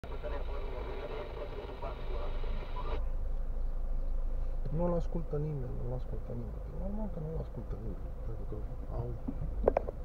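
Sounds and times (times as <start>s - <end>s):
talk from car radio: 0.0s - 3.0s.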